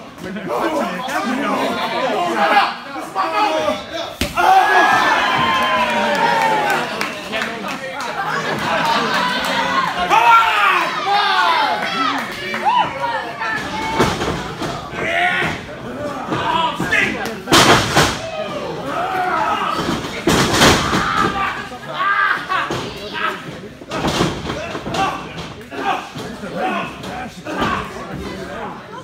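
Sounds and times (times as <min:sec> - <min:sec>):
crowd shouting: 0:00.5 - 0:07.5, 0:08.2 - 0:15.6.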